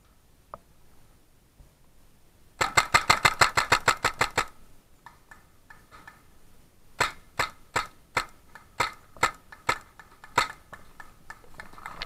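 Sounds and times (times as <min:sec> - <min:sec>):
paintball marker firing: 0:07.0 - 0:11.4.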